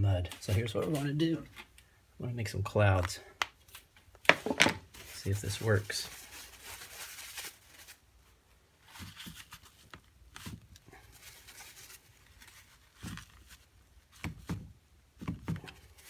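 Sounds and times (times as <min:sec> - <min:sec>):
paper towel rustling: 0:04.3 - 0:14.2.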